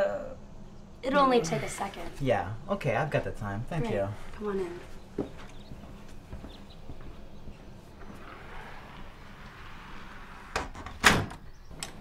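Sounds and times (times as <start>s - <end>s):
wooden door shutting: 8.0s - 12.0s
door latch catching: 10.8s - 12.0s.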